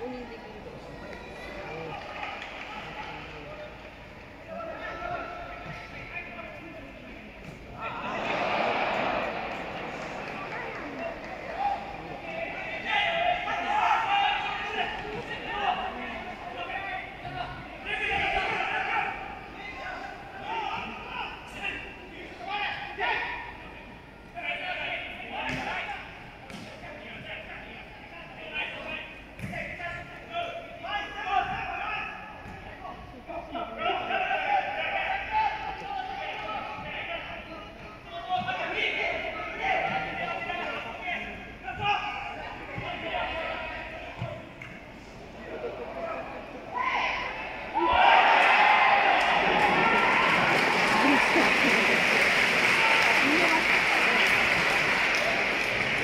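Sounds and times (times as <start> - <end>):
stadium crowd noise: 0.0 - 56.0
people shouting: 46.7 - 51.9.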